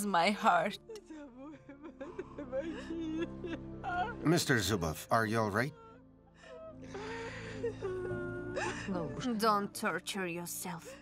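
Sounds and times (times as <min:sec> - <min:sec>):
soft background music: 0:00.0 - 0:11.0
man sobbing: 0:01.2 - 0:05.8.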